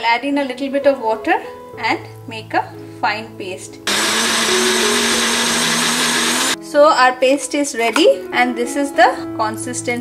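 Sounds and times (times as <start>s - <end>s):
blender running: 3.9s - 6.6s.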